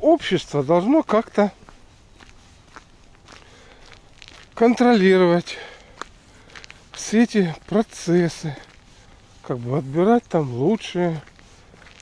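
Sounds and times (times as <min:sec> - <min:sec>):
faint footsteps on path: 0:00.0 - 0:12.0.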